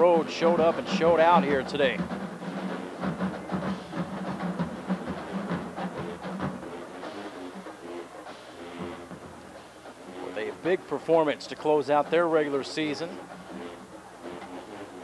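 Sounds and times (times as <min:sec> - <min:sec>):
drums beating: 0:00.0 - 0:15.0
held horn notes: 0:00.0 - 0:15.0.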